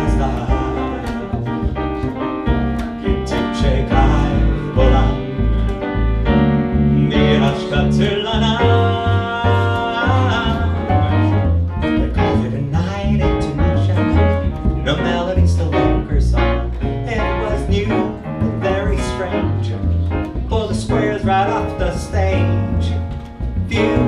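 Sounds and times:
man singing into microphone: 0.0 - 1.5, 3.0 - 5.5, 6.9 - 11.3, 12.0 - 19.8, 20.5 - 23.0, 23.7 - 24.0
piano playing jazz: 0.0 - 24.0
upright double bass: 0.0 - 24.0.

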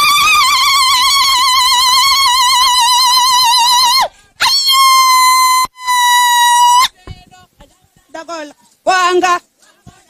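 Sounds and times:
high-pitched wailing cry: 0.0 - 7.0.

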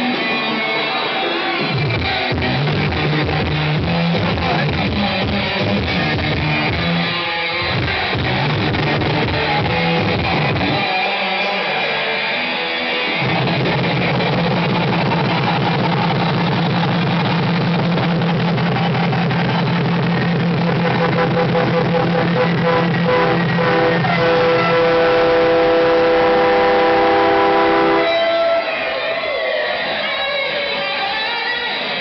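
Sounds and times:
distorted electric guitar riff: 0.0 - 32.0.

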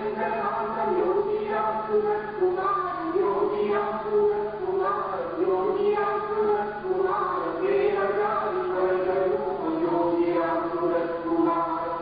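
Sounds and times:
group chanting a devotional song: 0.0 - 12.0.

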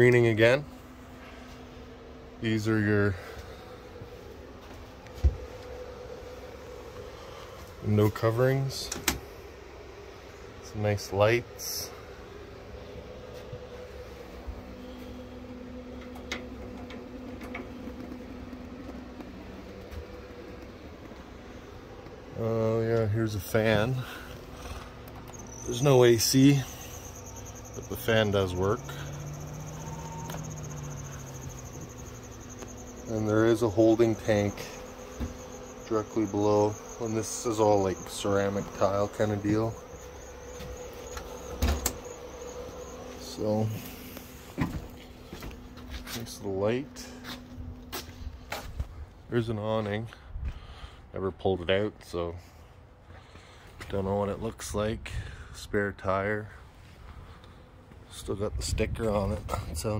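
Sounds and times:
thin high whine: 0.0 - 50.9
steady mechanical hum: 0.0 - 59.9.

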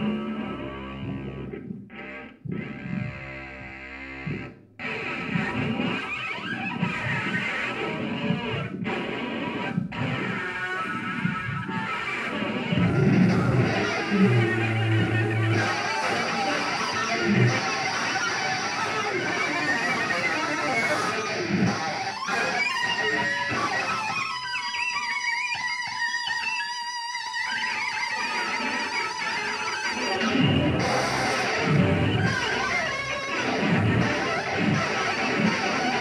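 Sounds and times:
saxophone and cello noise music: 12.8 - 18.0.

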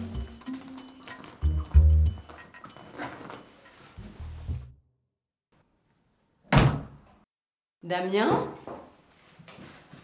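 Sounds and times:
door shutting: 6.5 - 7.0.

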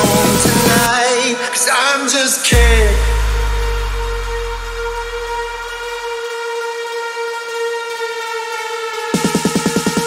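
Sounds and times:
low bass note: 2.6 - 6.2.

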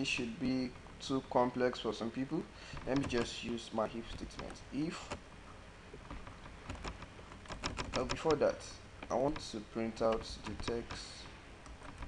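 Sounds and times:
computer keyboard typing: 6.7 - 11.2.

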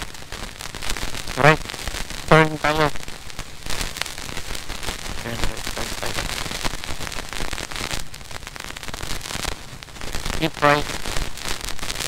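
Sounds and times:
dense crackling noise: 0.0 - 12.0
faint voice: 2.3 - 2.9, 5.2 - 6.3, 10.4 - 10.9.

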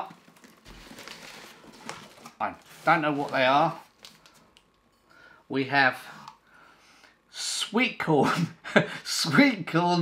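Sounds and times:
cardboard box rustling: 0.2 - 3.4.

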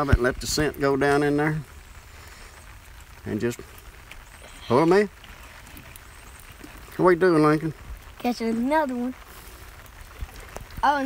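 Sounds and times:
light rain hiss: 0.0 - 11.0
rain drop ticks: 0.0 - 11.0.

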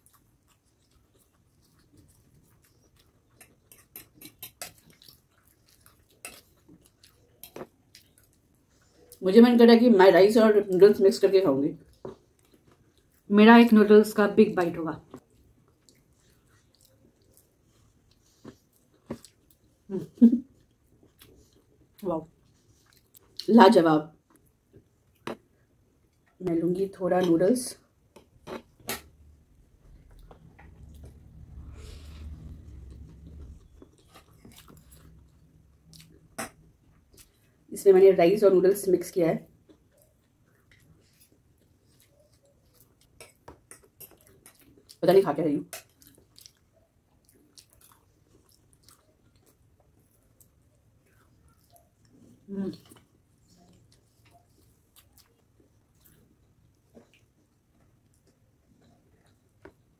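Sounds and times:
chewing noodles: 0.0 - 9.2, 15.1 - 23.5, 29.8 - 37.7, 39.4 - 45.0, 45.6 - 59.9.

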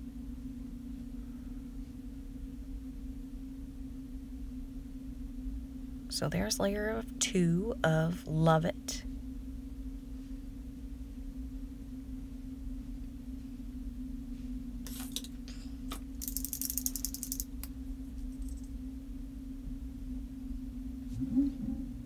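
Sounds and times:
low hum: 0.0 - 22.0
rapid rattle of fine ticks: 16.2 - 17.7.

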